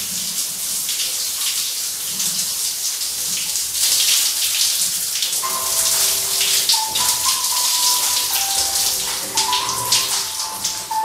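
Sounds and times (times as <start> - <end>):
shower spray on tiled floor: 0.0 - 11.0
soft tune of held notes: 5.4 - 11.0.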